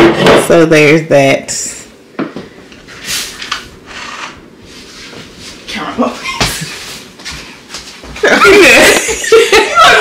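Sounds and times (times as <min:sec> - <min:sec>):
soft rustling brushes: 0:02.8 - 0:08.4.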